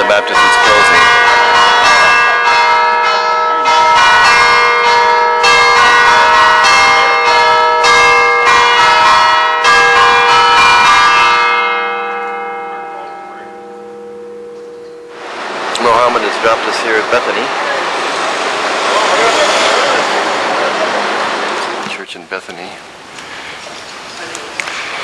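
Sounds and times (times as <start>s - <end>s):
bell hum: 0.0s - 15.2s
church bells ringing: 0.0s - 21.6s.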